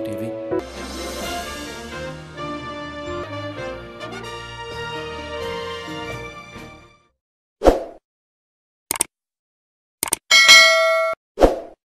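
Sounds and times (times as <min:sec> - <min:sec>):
bright bell chime: 0:10.3 - 0:11.2.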